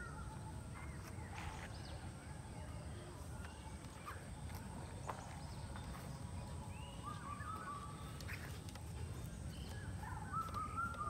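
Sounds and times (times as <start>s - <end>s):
birds calling: 3.5s - 11.0s.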